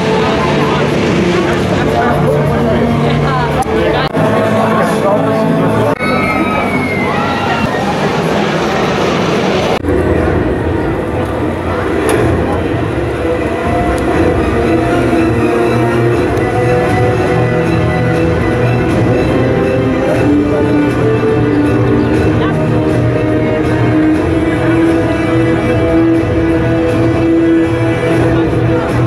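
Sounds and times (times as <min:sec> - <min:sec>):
roller coaster rumbling on track: 0:00.0 - 0:29.0.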